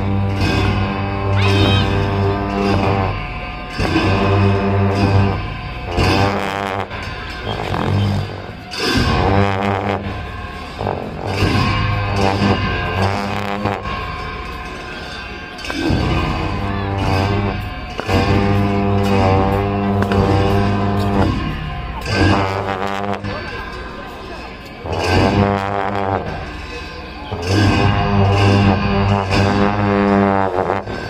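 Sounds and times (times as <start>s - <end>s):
long horns low drone: 0.0s - 14.6s, 15.6s - 23.7s, 24.8s - 31.0s
reedy shawm melody: 0.0s - 31.0s.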